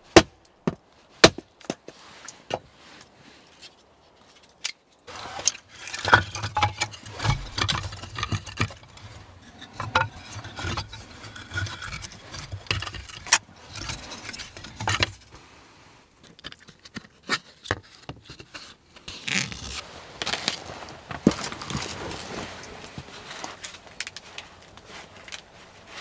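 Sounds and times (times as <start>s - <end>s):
clicks knocks and scrapes of objects: 1.2s - 15.3s, 16.2s - 26.0s
rustling: 1.8s - 16.3s, 17.0s - 26.0s.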